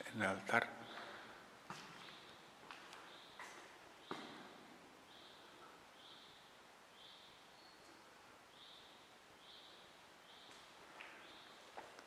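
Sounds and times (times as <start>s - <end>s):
faint footsteps on stone floor: 0.9s - 4.7s, 10.5s - 12.0s.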